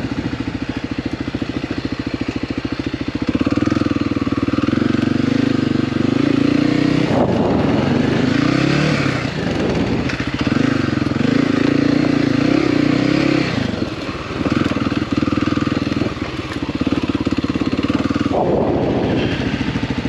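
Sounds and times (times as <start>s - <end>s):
engine clatter: 0.0s - 20.0s
motorcycle engine on dirt trail: 0.0s - 20.0s.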